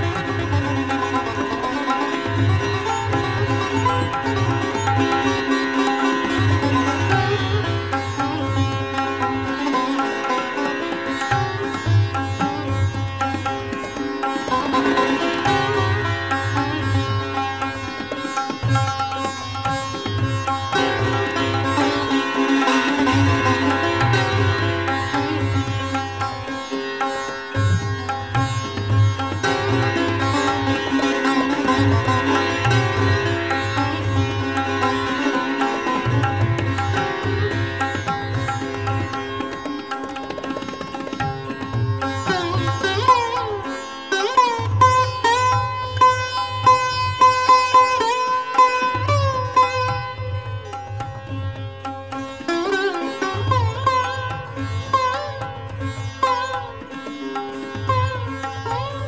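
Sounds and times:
sitar playing fast: 0:00.0 - 0:59.0.

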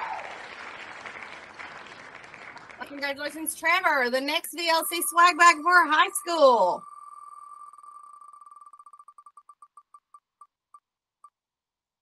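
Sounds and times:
electronic spinner ticks: 0:02.8 - 0:10.5.

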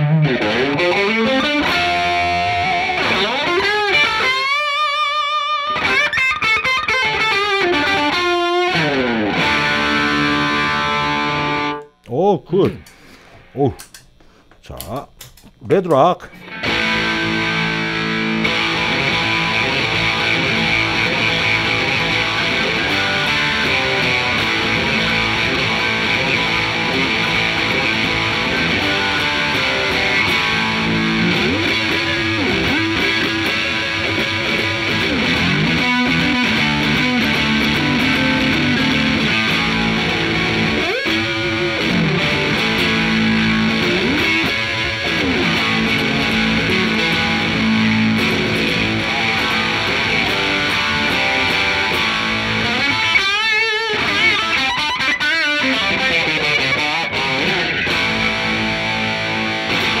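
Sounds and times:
electric guitar lead with bends: 0:00.0 - 0:12.0, 0:16.3 - 1:00.0.

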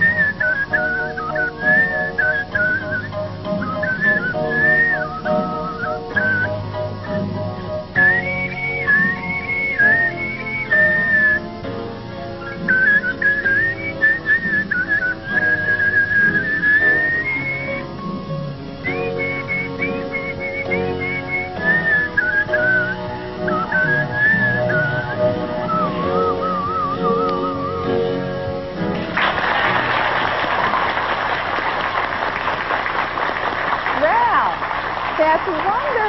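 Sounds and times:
man whistling a melody: 0:00.0 - 0:11.6, 0:12.4 - 0:28.3
instrumental accompaniment: 0:00.0 - 0:36.0.

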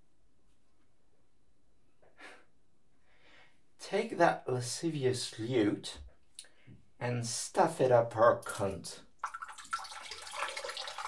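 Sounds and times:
water running from a tap: 0:09.2 - 0:11.0.

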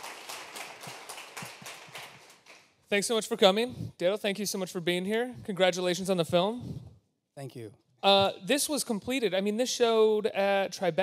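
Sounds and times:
audience applause: 0:00.0 - 0:02.7.

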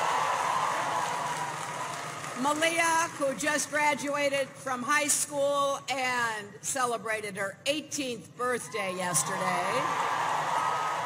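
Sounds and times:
crowd cheering and applauding: 0:00.0 - 0:03.4, 0:09.2 - 0:11.0.

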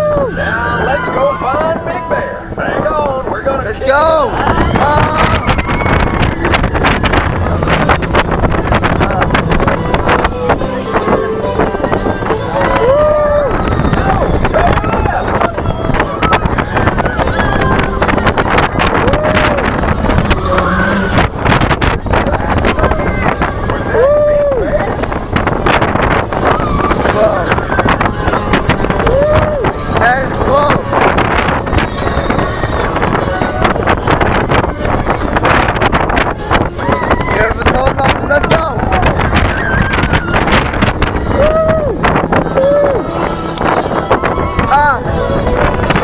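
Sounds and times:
riders whooping: 0:00.0 - 0:01.8, 0:04.3 - 0:10.2, 0:12.2 - 0:46.0
roller coaster rattling on track: 0:00.0 - 0:46.0
wind rushing on microphone: 0:00.0 - 0:46.0.

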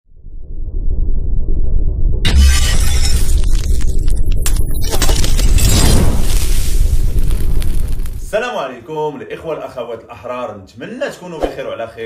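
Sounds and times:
deep low boom: 0:00.1 - 0:02.3
glass shattering: 0:02.3 - 0:08.0.

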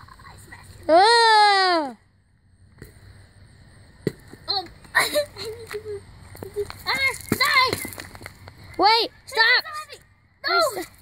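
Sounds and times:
girls exclaiming: 0:08.8 - 0:11.0.

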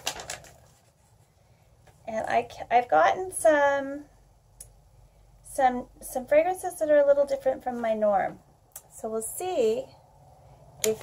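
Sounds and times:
paper sheets rustling: 0:00.0 - 0:01.3.

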